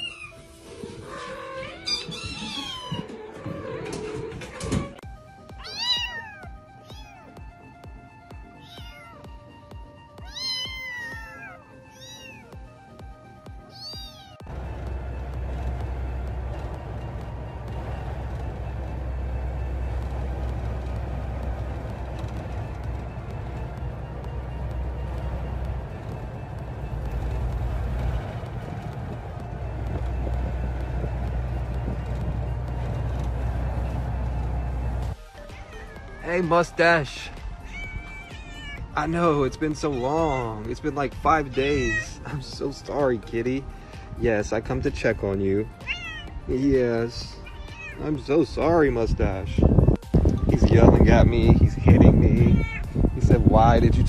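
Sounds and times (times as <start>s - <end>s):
cat meowing: 1.1s - 3.1s, 5.6s - 7.4s, 8.5s - 9.3s, 10.2s - 12.6s, 13.6s - 14.5s, 37.6s - 38.9s, 41.5s - 42.3s, 45.8s - 46.4s, 47.3s - 48.1s, 52.4s - 53.0s
vehicle driving low rumble: 12.6s - 54.0s.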